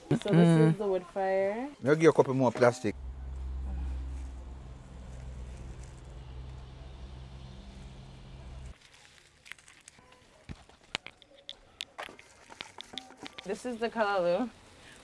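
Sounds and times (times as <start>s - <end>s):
steady low hum: 2.9s - 8.8s
fire crackling: 2.9s - 10.1s.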